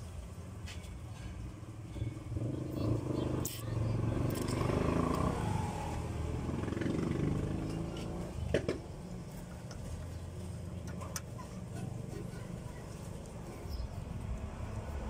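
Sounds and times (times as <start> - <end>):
vehicle engine running: 2.1 - 15.0.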